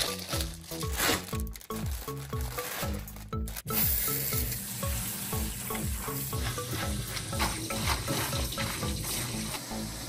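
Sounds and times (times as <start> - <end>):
background music with beat: 0.0 - 10.0
tap water spraying into colander: 3.7 - 10.0.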